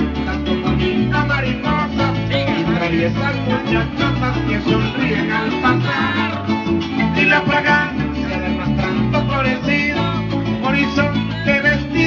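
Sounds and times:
steady bass line: 0:00.0 - 0:12.0.

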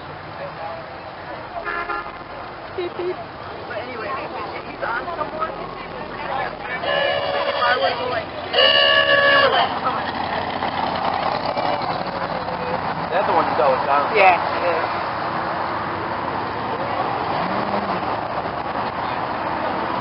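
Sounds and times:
passing traffic: 0:00.0 - 0:20.0
car horn blasts: 0:01.6 - 0:02.2, 0:06.7 - 0:09.8.

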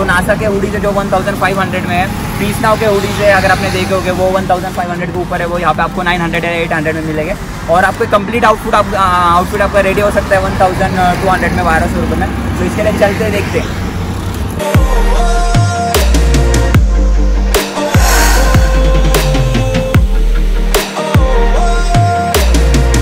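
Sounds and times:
man talking: 0:00.0 - 0:13.8
road traffic noise: 0:00.0 - 0:23.0.

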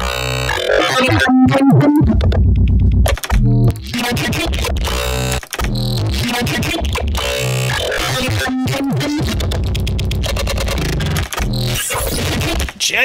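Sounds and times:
distorted pitched scream sample: 0:00.0 - 0:02.2, 0:03.5 - 0:12.6
heavy bass: 0:00.0 - 0:12.7.

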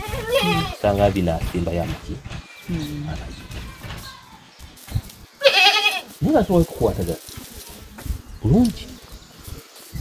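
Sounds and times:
farm animal bleating: 0:00.0 - 0:00.9, 0:05.4 - 0:06.2.

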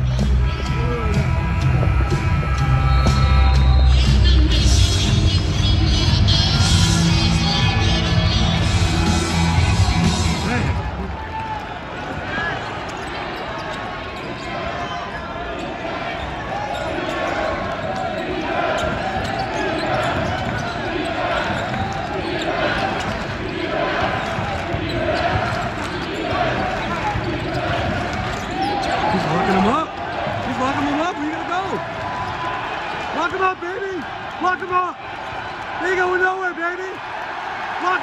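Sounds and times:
arena music: 0:00.0 - 0:11.2
arena crowd chatter: 0:00.0 - 0:38.0.

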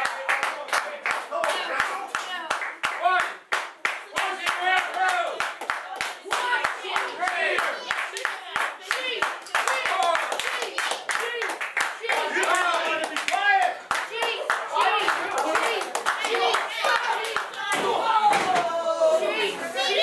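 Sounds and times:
crowd clapping in rhythm: 0:00.0 - 0:17.8
voices shouting: 0:12.0 - 0:20.0.

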